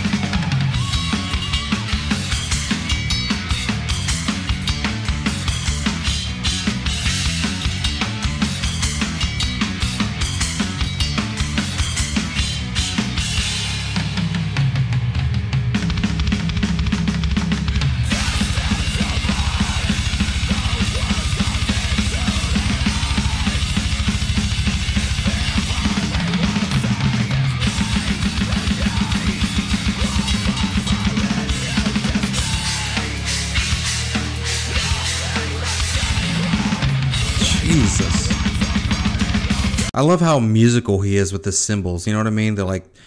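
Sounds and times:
rapid bass drum strokes: 0.0s - 39.9s
heavy metal band recording: 0.0s - 40.2s.

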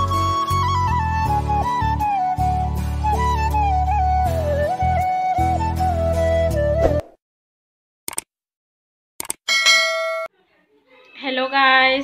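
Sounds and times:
notification bell ding: 9.5s - 10.3s.

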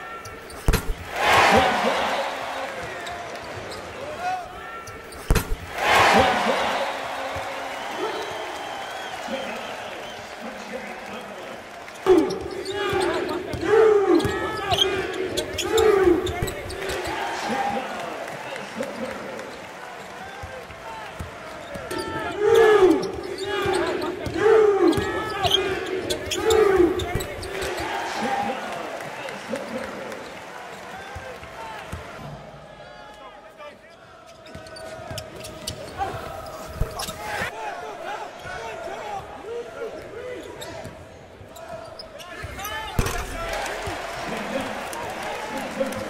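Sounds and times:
crowd voices: 0.0s - 33.2s, 33.9s - 46.0s
sneakers squeaking on hardwood: 0.2s - 1.1s, 4.8s - 5.7s, 34.3s - 37.5s
basketball bouncing: 0.6s - 1.1s, 5.2s - 5.8s.

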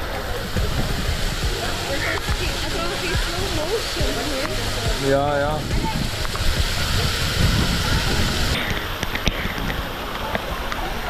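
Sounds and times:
waterfall rushing: 0.0s - 11.0s.

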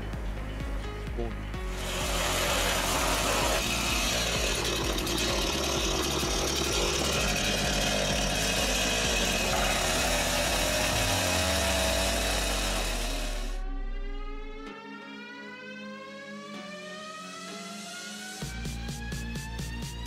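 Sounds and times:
chainsaw cutting wood: 1.7s - 13.6s.

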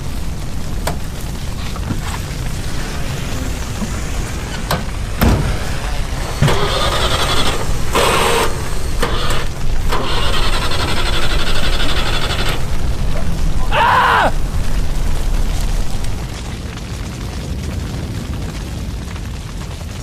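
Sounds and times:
steady low rumble: 0.0s - 20.0s
engine starter cranking: 6.2s - 12.8s.

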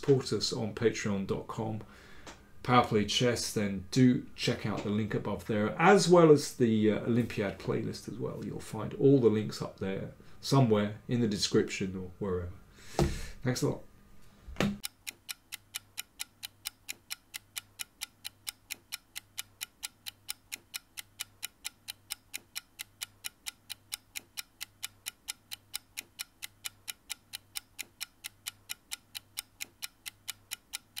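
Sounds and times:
clock-like ticking: 14.8s - 31.0s.

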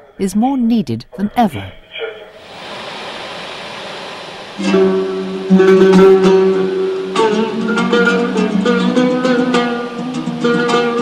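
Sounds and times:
steady hiss: 2.2s - 11.0s
plucked string instrument: 5.5s - 11.0s.

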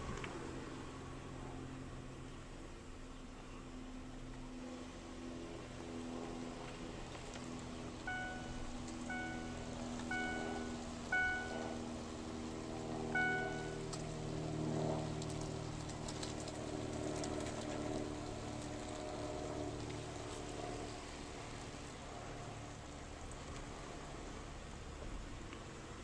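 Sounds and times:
car engine running: 7.1s - 19.0s
short electronic beeps: 8.1s - 11.8s, 13.2s - 13.8s.

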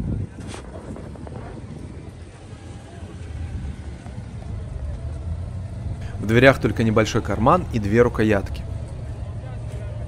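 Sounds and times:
low rumble of motor traffic: 0.0s - 10.0s
faint voices: 6.0s - 10.0s.

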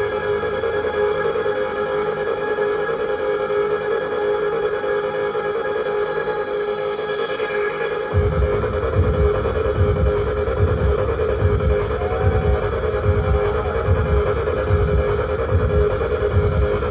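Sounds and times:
loud trance music: 0.0s - 16.9s
sustained synth chords: 6.5s - 16.9s
kick drum: 8.1s - 16.9s.

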